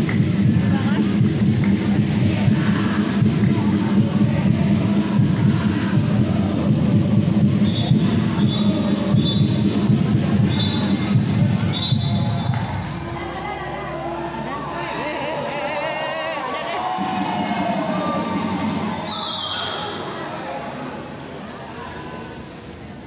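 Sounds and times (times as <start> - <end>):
loud music with low beat: 0.0 - 13.9
crowd noise: 0.0 - 23.0.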